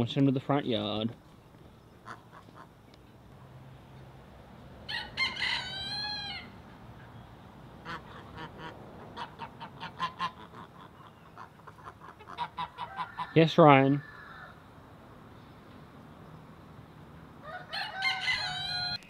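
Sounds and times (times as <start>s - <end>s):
geese calling: 7.8s - 14.5s.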